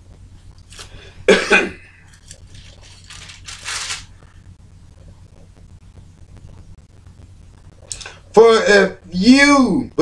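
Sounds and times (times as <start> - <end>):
man coughing: 1.3 - 2.0.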